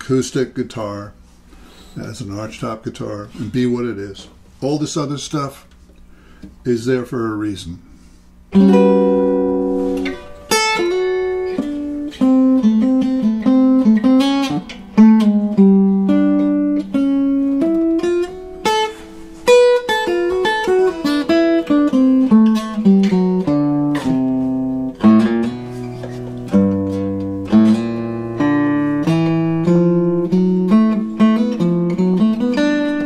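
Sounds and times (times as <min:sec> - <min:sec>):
acoustic guitar plucked notes and chords: 0:08.5 - 0:33.0.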